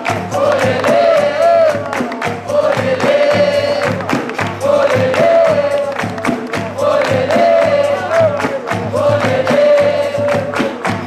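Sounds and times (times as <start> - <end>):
steady low drum beat: 0.0 - 11.0.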